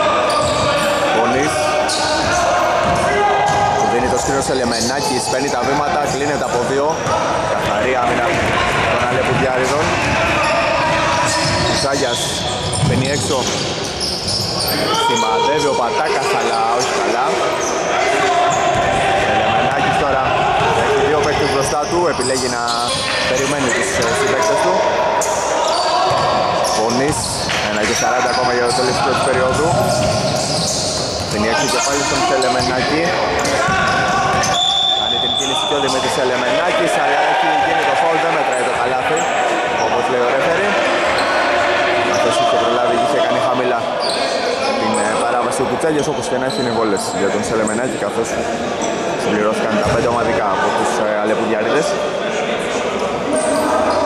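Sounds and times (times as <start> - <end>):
players' voices echoing: 0.0 - 54.0
basketball bouncing on wooden court: 2.2 - 3.7, 7.0 - 10.2, 10.8 - 14.5, 26.1 - 26.4, 29.2 - 31.4, 33.4 - 34.6
referee's whistle: 11.3 - 15.8, 25.2 - 27.4, 33.4 - 36.2.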